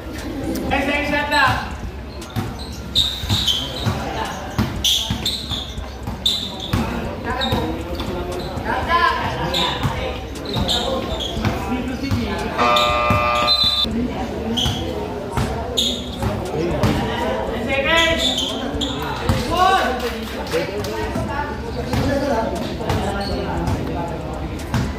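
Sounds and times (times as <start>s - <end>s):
sneakers squeaking: 0.0s - 19.6s, 21.0s - 24.9s
voices of onlookers: 0.0s - 24.9s
basketball dribbling: 1.5s - 13.6s.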